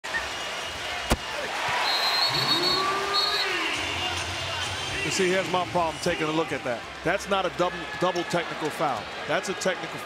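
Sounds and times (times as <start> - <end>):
arena crowd noise: 0.0 - 10.0
referee's whistle blasts: 1.8 - 3.7.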